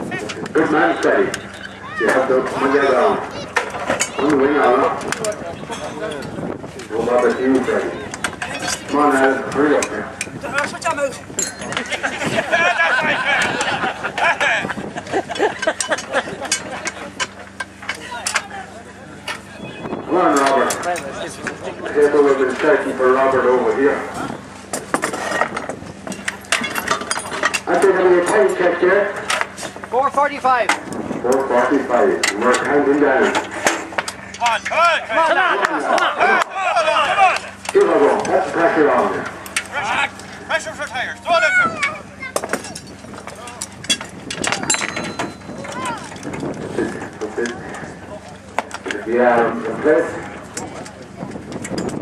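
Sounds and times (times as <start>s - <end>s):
voices calling out: 0.0s - 52.0s
metallic clinks and knocks: 10.2s - 12.1s, 24.8s - 28.4s, 42.4s - 46.6s
metal clinks of hand tools: 11.4s - 12.0s, 42.6s - 46.1s.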